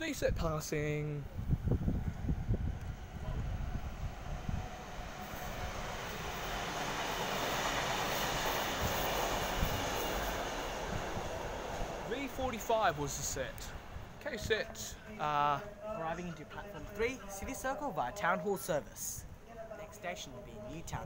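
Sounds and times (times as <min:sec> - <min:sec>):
electric train rolling past: 0:01.2 - 0:17.9.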